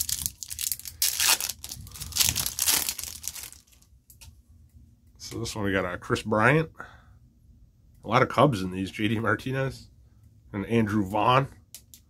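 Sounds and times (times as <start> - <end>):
foil wrapper tearing and crinkling: 0.0 - 3.8.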